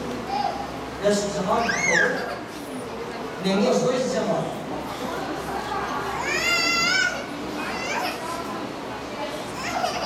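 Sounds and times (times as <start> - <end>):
distant voices in a hall: 0.0 - 10.0.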